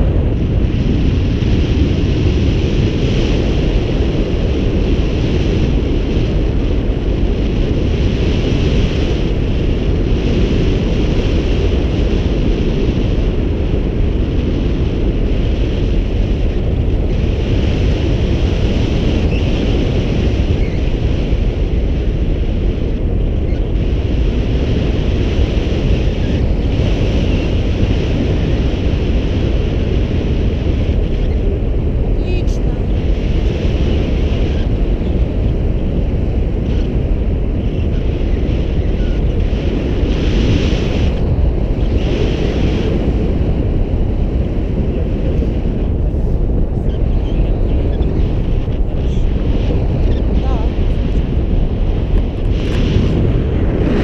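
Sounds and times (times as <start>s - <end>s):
wind rumble on microphone: 0.0s - 54.0s.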